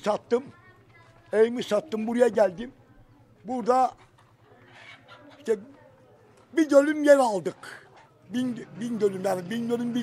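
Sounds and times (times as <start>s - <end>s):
chickens clucking: 3.9s - 6.4s.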